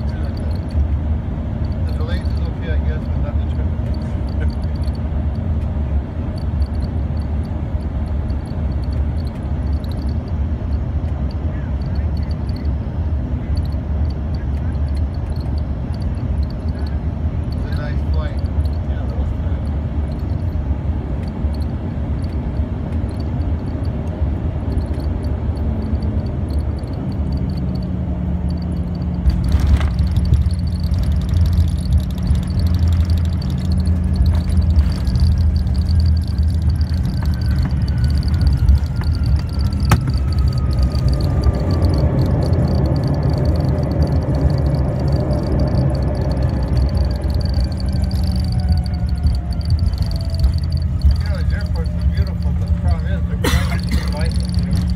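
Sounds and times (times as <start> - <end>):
jet cabin noise: 0.0 - 54.9
jet engine whine: 0.0 - 54.9.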